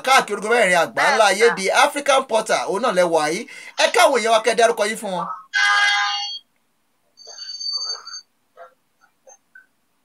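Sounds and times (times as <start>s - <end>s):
electronic ringtone tones: 5.5s - 6.4s, 7.2s - 8.2s.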